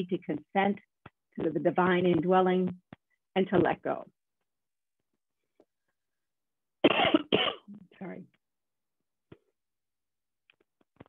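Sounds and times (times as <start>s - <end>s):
woman coughing: 6.8s - 7.8s.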